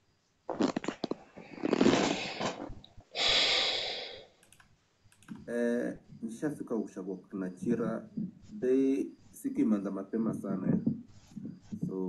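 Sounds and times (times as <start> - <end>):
breathy rush of noise: 1.8 - 4.4
light clicks: 4.4 - 5.5
man making wordless sounds: 5.3 - 12.0.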